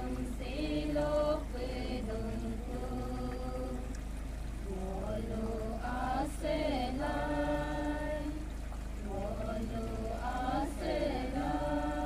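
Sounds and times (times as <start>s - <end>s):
group chanting a prayer song: 0.0s - 3.9s, 4.6s - 12.0s.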